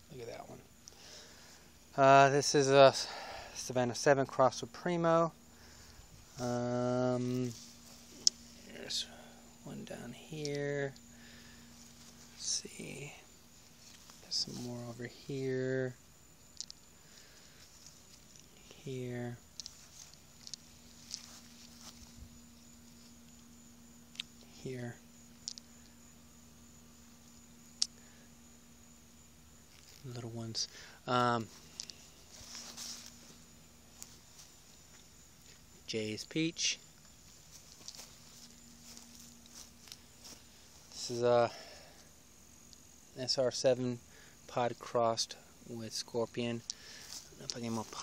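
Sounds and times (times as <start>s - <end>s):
faint low hum: 0.0s - 48.0s
faint outdoor hiss: 0.0s - 48.0s
footsteps on grass: 6.1s - 9.4s, 11.6s - 15.2s, 19.7s - 23.3s, 29.8s - 35.7s, 37.0s - 41.7s, 46.7s - 48.0s
rustling: 19.4s - 23.5s, 31.4s - 35.7s, 37.0s - 41.2s
faint clicks: 25.4s - 25.9s.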